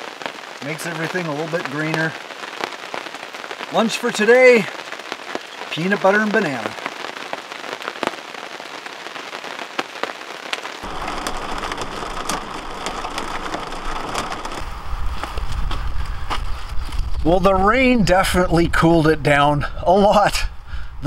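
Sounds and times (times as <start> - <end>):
raindrops ticking: 0.0 - 16.5
rain on a trailer roof: 0.0 - 20.4
low rumble: 10.8 - 21.0.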